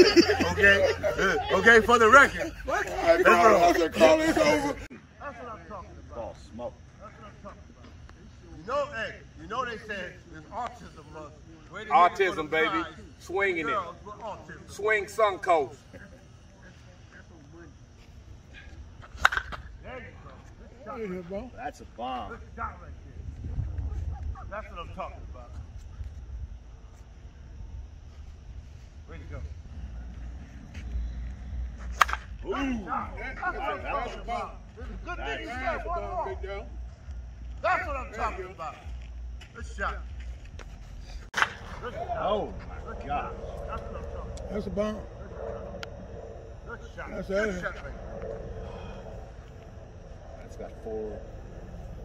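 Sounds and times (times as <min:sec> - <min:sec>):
men talking and calling out: 0:00.0 - 0:16.6, 0:29.1 - 0:40.2, 0:41.2 - 0:52.0
faint steady hum: 0:00.0 - 0:52.0
bat cracking against softball: 0:19.0 - 0:19.7, 0:31.8 - 0:32.3, 0:41.3 - 0:41.8
outdoor background rumble: 0:23.0 - 0:52.0.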